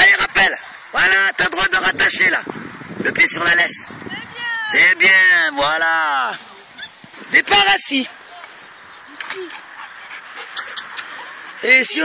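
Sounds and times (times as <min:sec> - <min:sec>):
dog panting: 0:09.5 - 0:12.0.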